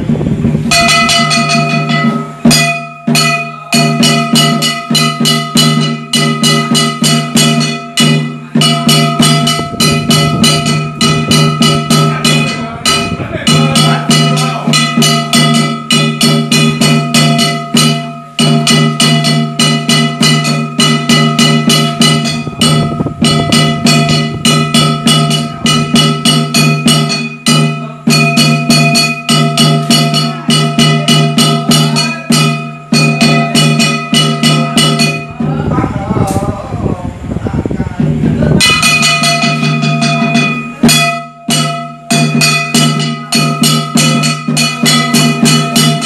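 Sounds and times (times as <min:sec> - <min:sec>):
metal percussion ringing: 0:00.0 - 0:36.8, 0:38.0 - 0:46.0
drum beating fast: 0:00.0 - 0:46.0.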